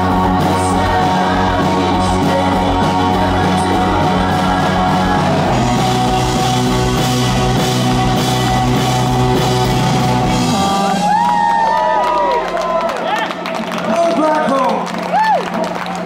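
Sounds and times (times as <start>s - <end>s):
rock band playing: 0.0s - 16.0s
crowd cheering and whistling: 8.1s - 16.0s.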